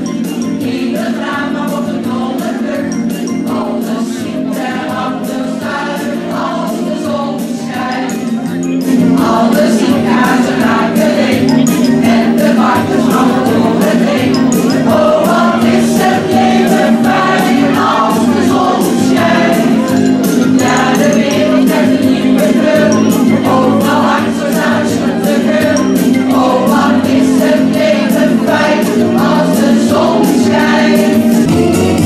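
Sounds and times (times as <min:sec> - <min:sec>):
accompaniment with steady beat: 0:00.0 - 0:32.0
choir singing: 0:00.3 - 0:32.0.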